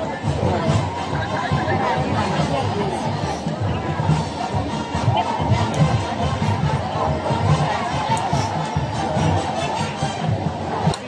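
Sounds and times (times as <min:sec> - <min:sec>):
crowd shouting and chatter: 0:00.0 - 0:11.0.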